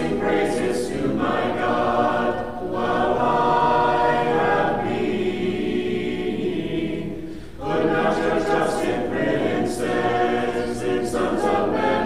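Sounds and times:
choir chanting unaccompanied: 0:00.0 - 0:12.0
breath: 0:07.2 - 0:07.6.

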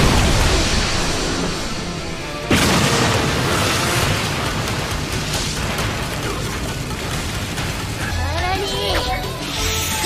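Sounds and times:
loud boom with rushing noise: 0:00.0 - 0:04.4
background music: 0:00.0 - 0:10.0.

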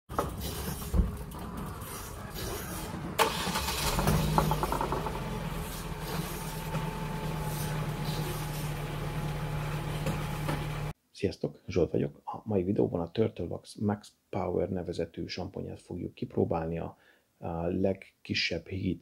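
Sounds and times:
car engine starting and idling: 0:00.1 - 0:11.0.

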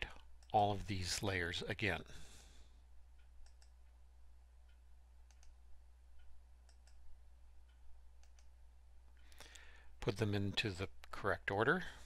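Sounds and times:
low steady hum: 0:00.0 - 0:12.0
computer mouse clicks: 0:03.2 - 0:03.8, 0:04.6 - 0:05.6, 0:06.2 - 0:07.0, 0:07.6 - 0:08.6.

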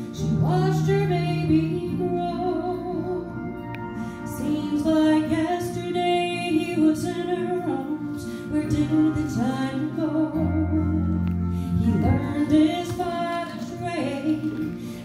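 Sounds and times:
instrumental accompaniment: 0:00.0 - 0:15.0
woman singing gospel: 0:04.3 - 0:14.8.

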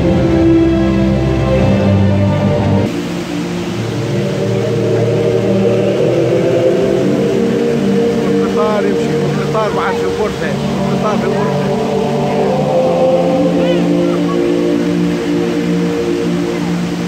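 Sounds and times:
music with long held tones: 0:00.0 - 0:17.0
waterfall rushing: 0:00.0 - 0:17.0
voices: 0:03.5 - 0:17.0.

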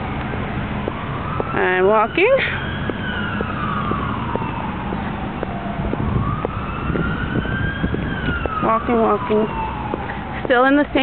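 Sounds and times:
emergency vehicle siren wailing: 0:00.0 - 0:11.0.

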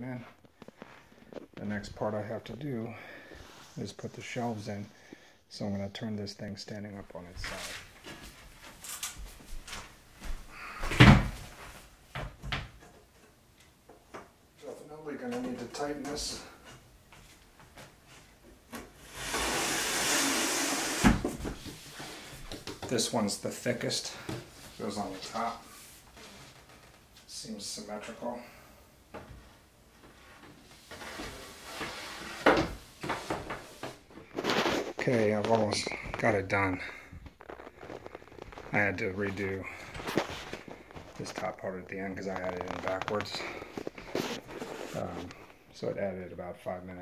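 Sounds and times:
panels scraping: 0:18.1 - 0:23.1, 0:30.1 - 0:45.6.

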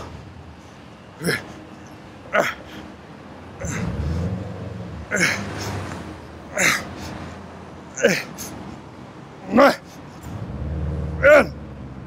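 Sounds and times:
low traffic rumble: 0:00.0 - 0:12.0
man's strained cry of effort: 0:08.0 - 0:08.4, 0:11.2 - 0:11.6.

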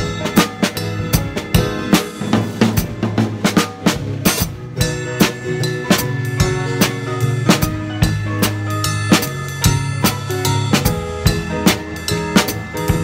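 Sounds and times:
backing track: 0:00.0 - 0:13.0
drum kit playing a groove: 0:00.0 - 0:13.0.

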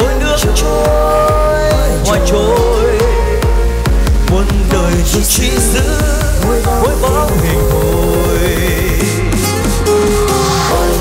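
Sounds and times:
kick drum beat: 0:00.0 - 0:09.5
synth and bass tones: 0:00.0 - 0:11.0.

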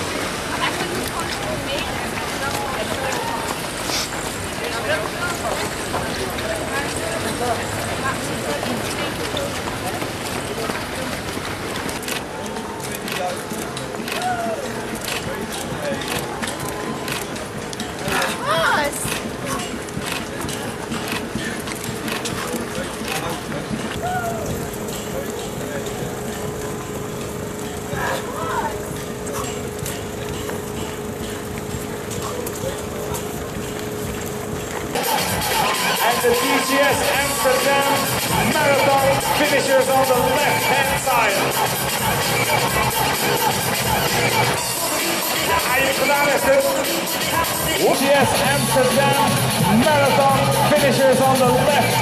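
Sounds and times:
people talking and calling: 0:00.0 - 0:52.0
runners' footsteps on pavement: 0:00.0 - 0:52.0
spectators cheering: 0:34.9 - 0:46.3.

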